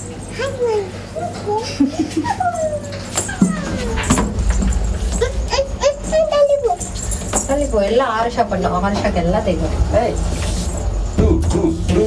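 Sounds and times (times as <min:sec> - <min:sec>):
child whining: 0:02.2 - 0:04.4, 0:05.2 - 0:06.8.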